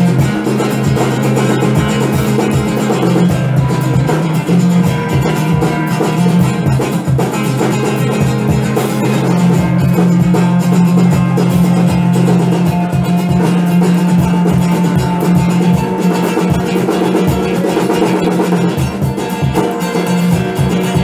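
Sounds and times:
acoustic guitar playing: 0:00.0 - 0:21.0
snare and cymbal hits: 0:00.0 - 0:21.0.

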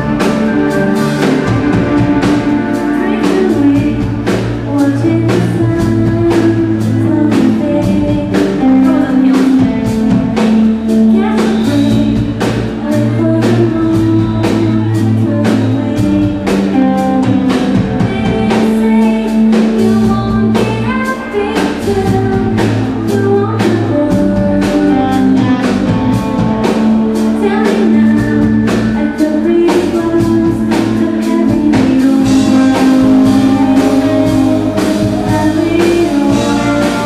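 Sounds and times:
guitar: 0:00.0 - 0:37.0
steady drum beat: 0:00.0 - 0:37.0
woman singing: 0:00.0 - 0:37.0.

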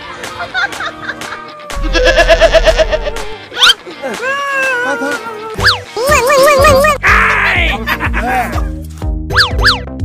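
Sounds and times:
background music with bass line: 0:00.0 - 0:10.0
cartoon pitch sweep effects: 0:09.3 - 0:09.9.

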